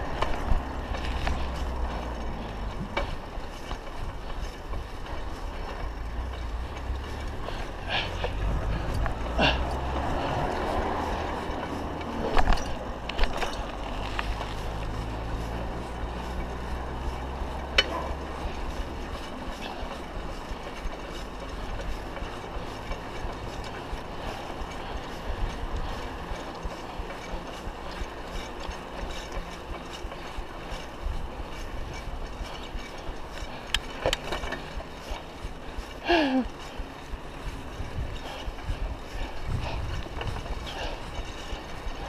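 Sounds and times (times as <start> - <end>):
bicycle rattles and clicks: 0.0 - 42.0
wind and road noise: 0.0 - 42.0.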